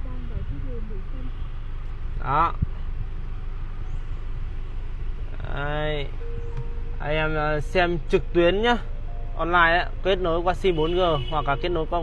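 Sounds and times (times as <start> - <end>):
car cabin low rumble: 0.0 - 12.0.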